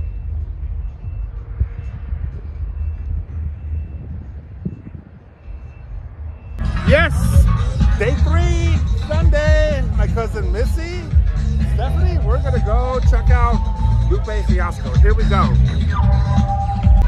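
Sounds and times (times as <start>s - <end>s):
wind rumbling on microphone: 0.0s - 17.0s
man's voice: 6.6s - 16.4s
festival music: 6.6s - 17.0s.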